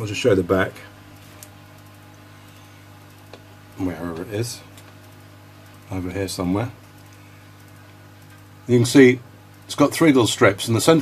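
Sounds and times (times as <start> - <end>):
low hum with light hiss: 0.0 - 11.0.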